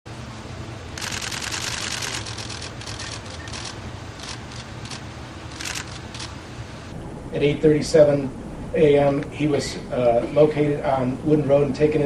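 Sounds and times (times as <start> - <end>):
steady low hum: 0.1 - 12.0
camera shutters clicking: 1.0 - 6.4.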